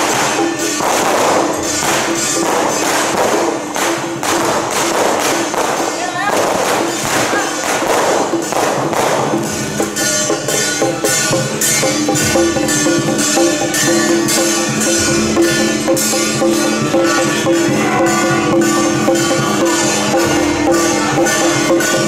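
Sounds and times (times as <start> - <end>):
crashing cymbals: 0.0 - 22.0
drums: 0.0 - 22.0
gongs: 0.0 - 22.0.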